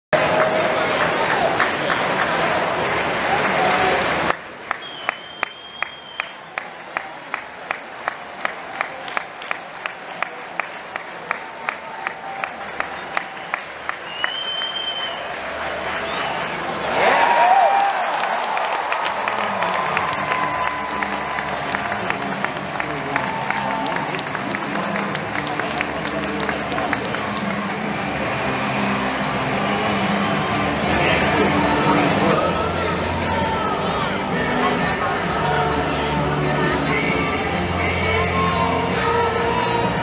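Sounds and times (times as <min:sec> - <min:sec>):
crowd applause: 0:00.1 - 0:40.0
crowd cheering: 0:00.1 - 0:40.0
rhythmic clapping: 0:00.1 - 0:40.0
short whistle: 0:04.7 - 0:06.4, 0:14.1 - 0:15.2.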